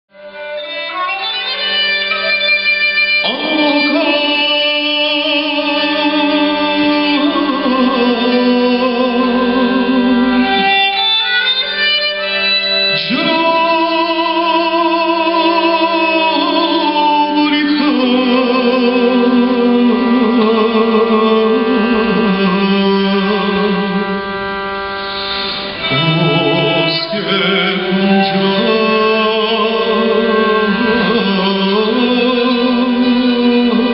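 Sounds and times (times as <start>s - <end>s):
spike fiddle and viola melody: 0.1s - 33.9s
held low drone note: 3.2s - 11.0s, 12.9s - 33.9s.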